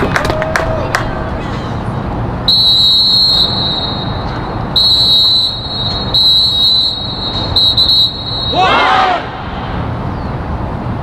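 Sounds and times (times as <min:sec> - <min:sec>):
low background murmur: 0:00.0 - 0:06.3
shrill whistle blasts: 0:02.5 - 0:09.1.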